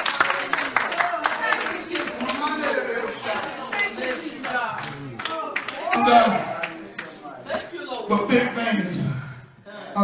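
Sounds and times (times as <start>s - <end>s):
congregation clapping: 0.0s - 7.2s.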